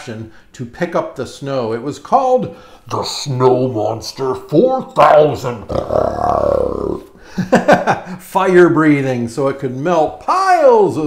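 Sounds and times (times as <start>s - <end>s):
man growling: 5.5s - 7.2s.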